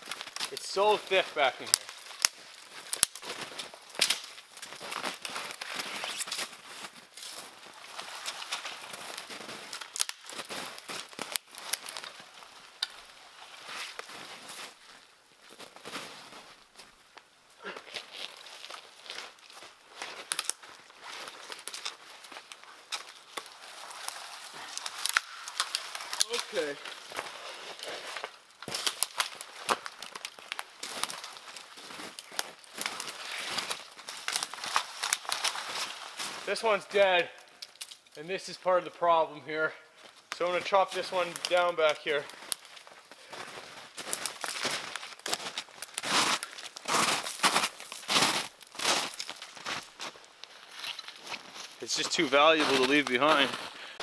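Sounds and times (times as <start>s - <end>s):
twigs snapping and crackling: 0.0s - 16.2s, 16.8s - 38.2s, 40.0s - 54.0s
footsteps in snow: 13.3s - 16.9s, 40.0s - 53.8s
brush rustling: 17.8s - 36.8s.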